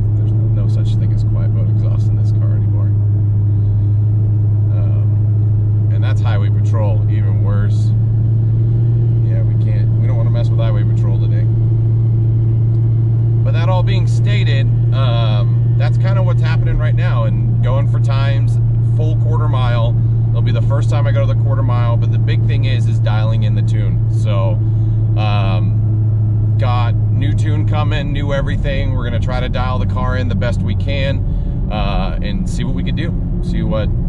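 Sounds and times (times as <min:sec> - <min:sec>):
car exhaust drone: 0:00.0 - 0:34.0.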